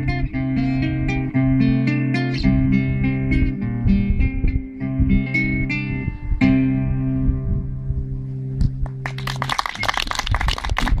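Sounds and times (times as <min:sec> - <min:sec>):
guitar low note ringing: 0:00.0 - 0:09.1
small audience clapping: 0:08.8 - 0:11.0.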